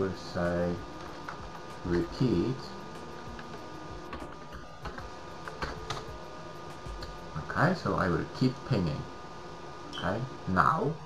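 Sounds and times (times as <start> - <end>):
faint steady hum: 0.0 - 11.0
keyboard typing: 3.3 - 6.2.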